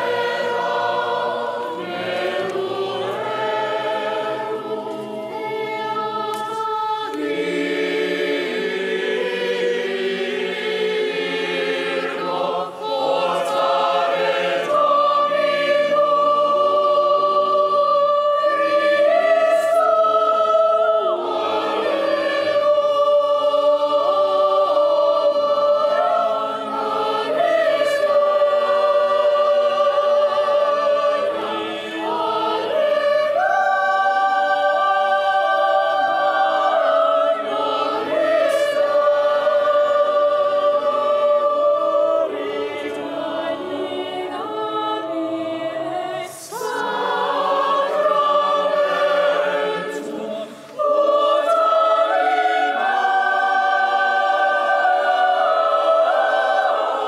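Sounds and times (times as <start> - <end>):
church choir singing: 0.0 - 57.0.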